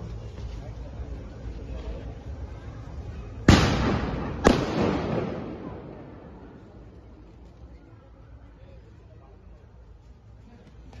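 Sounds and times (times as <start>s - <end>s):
loud sharp bangs: 3.5s - 6.7s.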